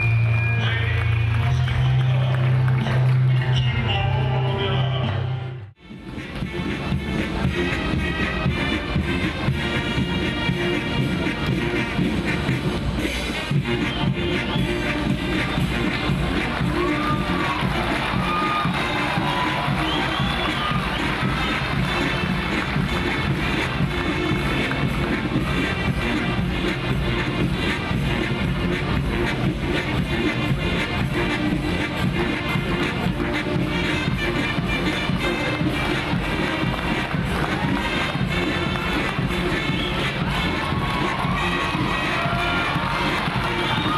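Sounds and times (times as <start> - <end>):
brass instruments playing: 1.6 - 43.9
bass drum: 5.8 - 43.9
snare drums: 5.8 - 43.9.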